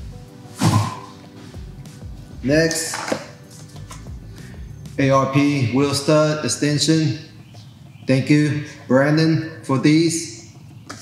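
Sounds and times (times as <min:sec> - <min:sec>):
quiet background music: 0:00.0 - 0:11.0
parts knocking on wooden workbench: 0:02.7 - 0:03.3.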